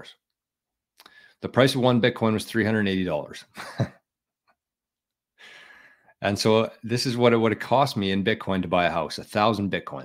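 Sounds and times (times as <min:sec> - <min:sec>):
man breathing: 0:01.0 - 0:01.4, 0:05.4 - 0:06.2.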